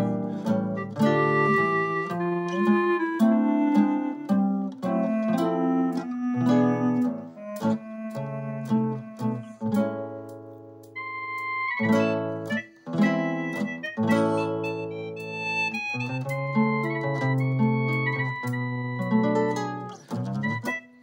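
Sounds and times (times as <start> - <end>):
electronic wind instrument high notes: 0.0 - 10.3, 11.0 - 21.0
tango backing track chords: 0.0 - 21.0.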